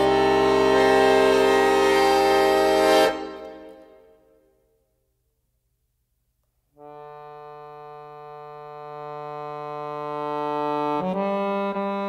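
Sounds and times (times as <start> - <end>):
accordion sustained chord: 0.0 - 4.4, 6.8 - 12.0.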